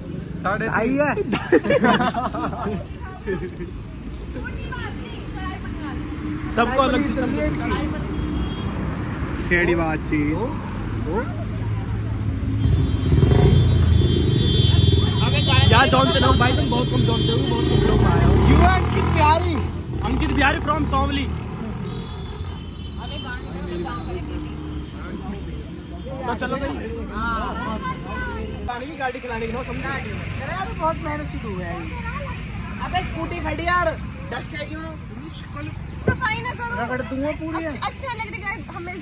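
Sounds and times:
low rumble of vehicles: 0:00.0 - 0:39.0
men's voices: 0:00.3 - 0:03.6, 0:15.4 - 0:22.0
people talking: 0:01.0 - 0:03.7, 0:14.6 - 0:19.5.

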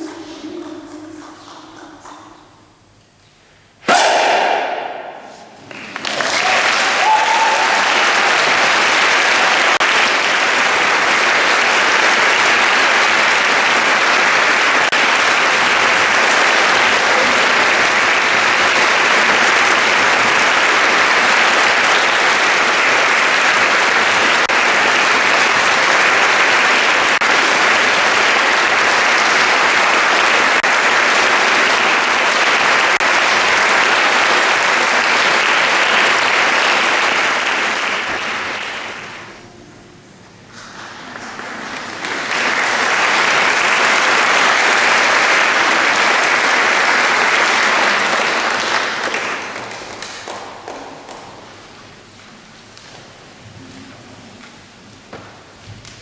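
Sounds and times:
audience applause: 0:04.2 - 0:39.4, 0:40.6 - 0:52.0.

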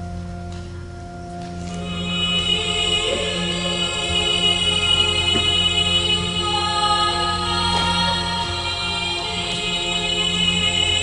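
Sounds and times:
slow music with held chords: 0:00.0 - 0:11.0
choir-like vocal sound: 0:01.8 - 0:11.0.

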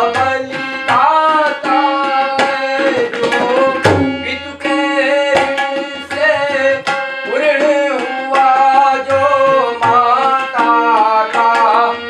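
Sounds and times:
harmonium chords: 0:00.0 - 0:12.0
man singing: 0:00.0 - 0:12.0
tabla strokes: 0:00.5 - 0:07.2.

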